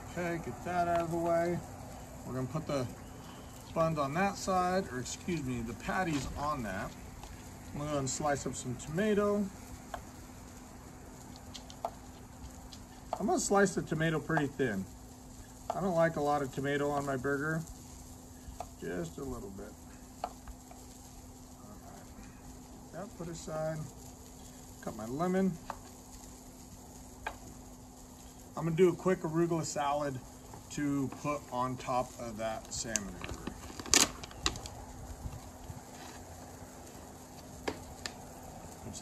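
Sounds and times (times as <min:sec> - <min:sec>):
person speaking: 0:00.0 - 0:03.0
faint background hum and hiss: 0:00.0 - 0:39.0.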